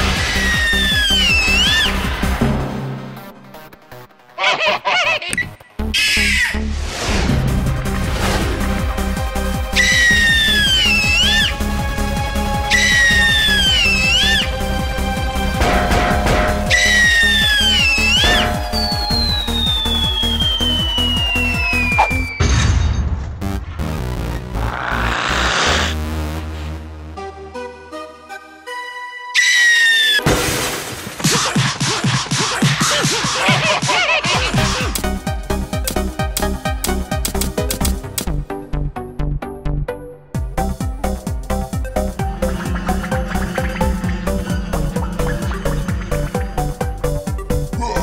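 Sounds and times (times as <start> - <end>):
cartoon background music: 0.0 - 23.0, 23.6 - 30.5, 31.3 - 48.0
sliding whistle-like tone: 16.7 - 22.5.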